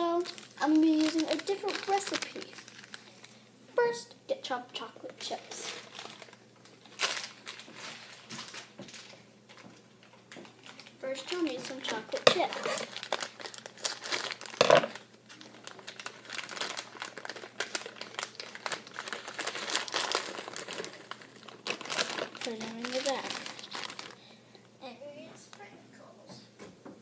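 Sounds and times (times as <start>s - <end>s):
plastic bag crinkling: 0.0s - 3.4s, 5.1s - 24.4s.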